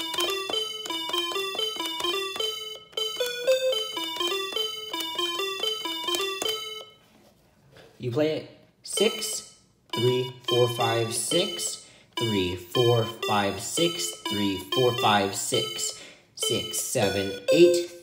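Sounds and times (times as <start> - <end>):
calculator key tones: 0.0 - 6.9.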